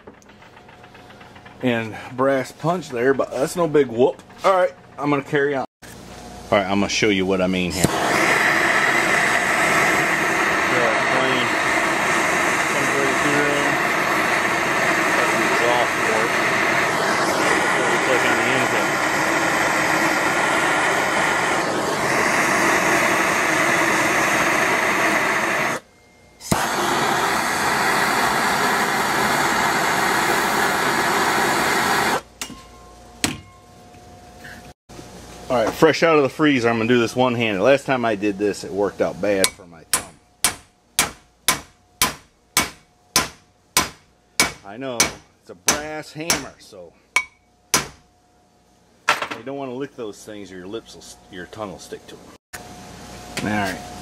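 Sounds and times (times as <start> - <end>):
propane torch hissing: 6.8 - 25.8, 26.4 - 32.3.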